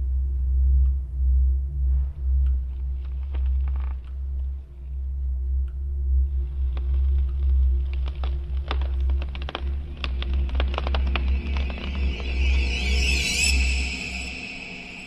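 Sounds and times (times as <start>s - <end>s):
deep low drone: 0.0s - 15.0s
high wavering sound: 10.7s - 15.0s.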